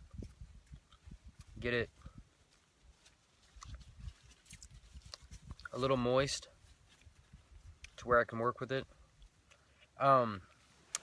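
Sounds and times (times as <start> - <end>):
person chewing bark: 3.4 - 5.8.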